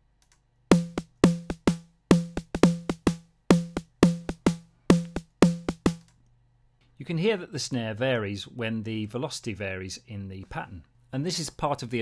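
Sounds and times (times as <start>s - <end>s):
synthesized snare drum hits: 0.7s - 6.0s.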